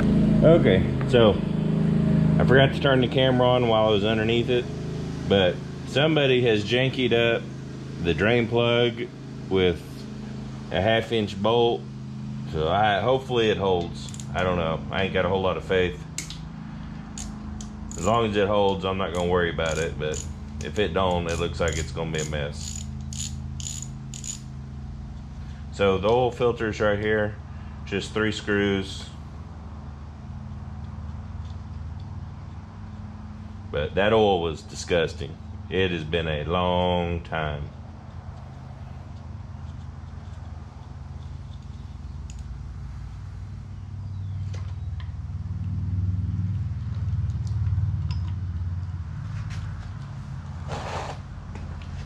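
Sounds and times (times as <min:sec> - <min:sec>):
steady low hum: 0:00.0 - 0:52.0
ratchet wrench clicking: 0:14.0 - 0:14.4, 0:17.2 - 0:25.3, 0:38.3 - 0:42.5.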